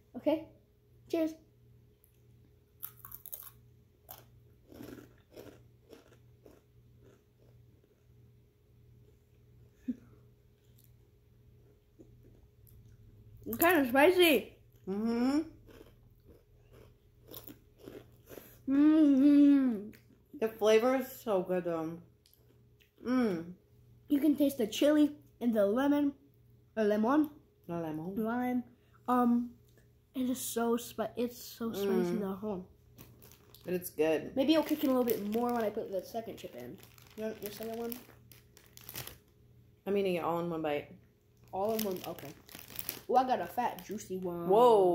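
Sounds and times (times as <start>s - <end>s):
chewing crunchy chips: 2.8s - 8.1s, 15.6s - 18.7s, 32.9s - 33.7s, 34.4s - 39.3s, 41.4s - 44.3s
foil snack bag crinkling: 33.0s - 39.4s, 41.4s - 44.4s.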